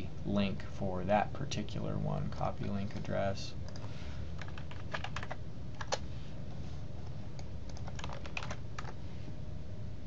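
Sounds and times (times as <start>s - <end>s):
low steady hum: 0.0s - 10.0s
computer keyboard keystrokes: 3.7s - 6.0s, 7.4s - 9.0s.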